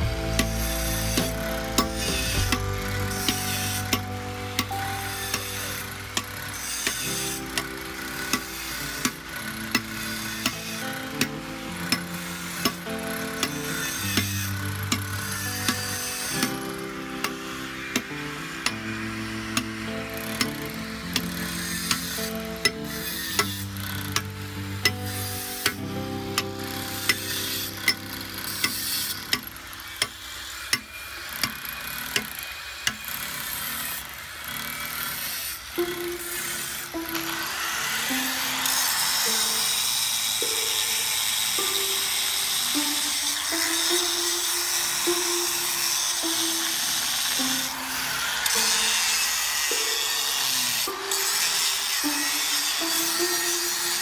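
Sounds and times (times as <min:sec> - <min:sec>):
hammer tapping steel chisel: 0:00.0 - 0:18.8, 0:19.6 - 0:54.0.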